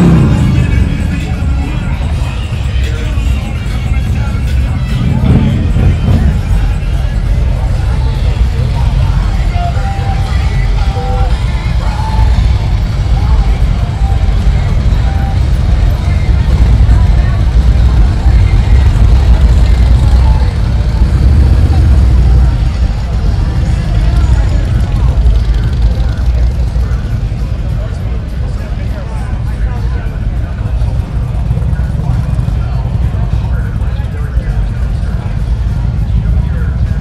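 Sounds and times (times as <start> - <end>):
motorcycles rumbling past: 0.0 - 2.3
crowd voices: 0.0 - 37.0.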